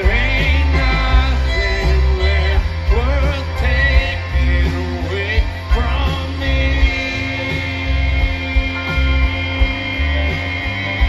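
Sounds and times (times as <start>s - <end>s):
bass guitar: 0.0s - 11.0s
electric guitars: 0.0s - 11.0s.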